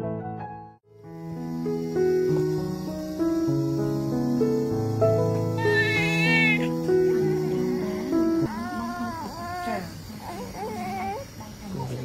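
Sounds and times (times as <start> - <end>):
slow background music: 1.0 - 8.7
newborn baby crying: 5.5 - 11.7.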